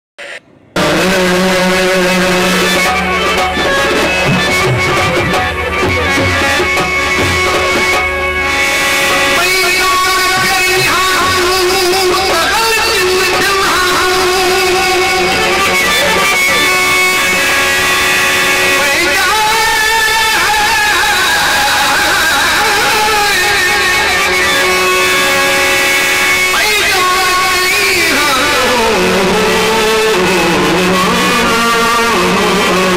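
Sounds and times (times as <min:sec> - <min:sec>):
live instrumental accompaniment: 0:00.8 - 0:32.9
man singing a long held note: 0:09.2 - 0:17.4, 0:18.6 - 0:24.8, 0:26.4 - 0:32.9.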